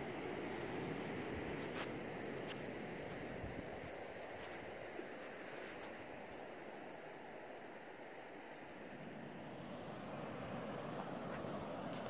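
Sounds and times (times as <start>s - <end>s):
distant sea surf: 0.0s - 12.0s
wind: 0.0s - 12.0s.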